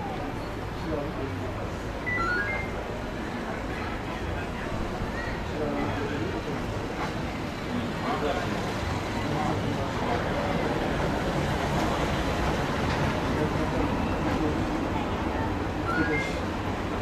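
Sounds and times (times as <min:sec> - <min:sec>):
faint indistinct voices: 0:00.0 - 0:17.0
traffic running: 0:00.0 - 0:17.0.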